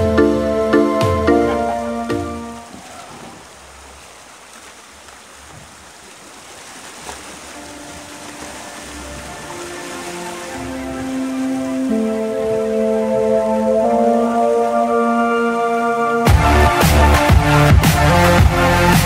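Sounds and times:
background music: 0:00.0 - 0:02.7, 0:07.2 - 0:19.0
river rushing over rapids: 0:01.6 - 0:15.0.

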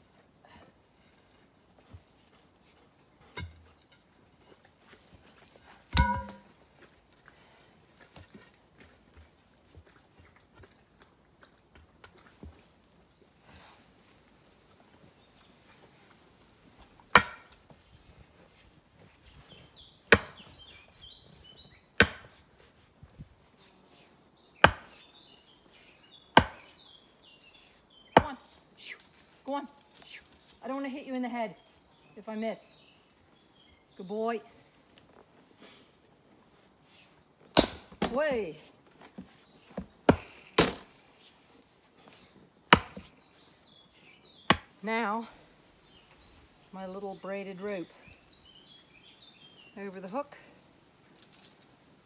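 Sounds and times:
sledgehammer striking wooden stake: 0:05.9 - 0:06.5, 0:17.1 - 0:17.5, 0:20.1 - 0:20.4, 0:22.0 - 0:22.4, 0:24.6 - 0:25.0, 0:26.4 - 0:26.7, 0:37.5 - 0:38.2, 0:40.1 - 0:40.9, 0:42.7 - 0:43.1, 0:44.5 - 0:44.8
birds chirping faintly: 0:18.4 - 0:52.0.

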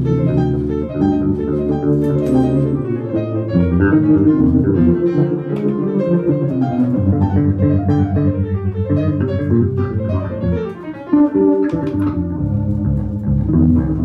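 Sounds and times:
electric bass guitar: 0:00.0 - 0:14.0
piano: 0:00.0 - 0:14.0.

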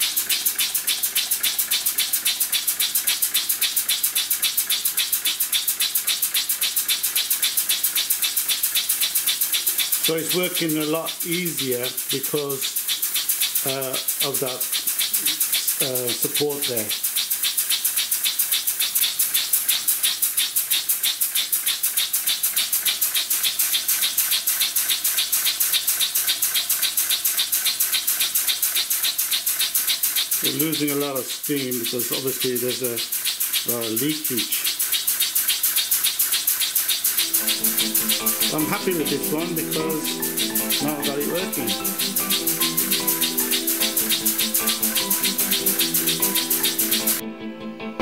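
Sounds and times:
steam engine exhaust puffs: 0:00.0 - 0:47.2
steam leaking: 0:00.0 - 0:47.2
background music held notes: 0:37.2 - 0:48.0.

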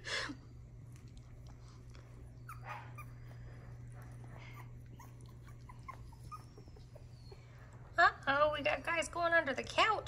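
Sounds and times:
puppies whimpering and squeaking: 0:02.1 - 0:09.0.

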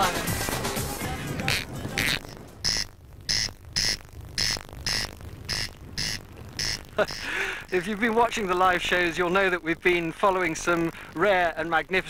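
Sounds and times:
corncrake rasping call: 0:01.3 - 0:07.9.

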